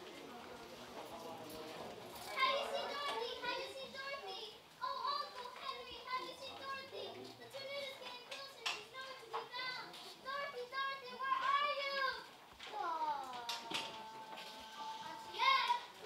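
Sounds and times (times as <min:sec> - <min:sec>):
children talking and calling out: 0:02.2 - 0:16.0.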